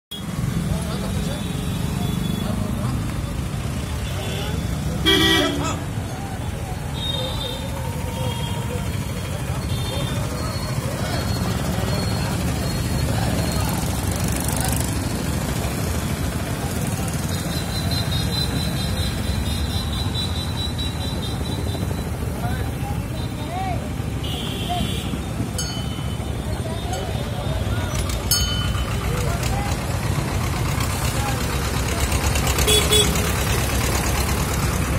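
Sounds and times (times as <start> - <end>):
street traffic noise: 0.1 - 34.9
vehicle engines rumbling: 0.1 - 34.9
crowd voices: 0.3 - 34.9
engine idling close by: 27.2 - 34.9.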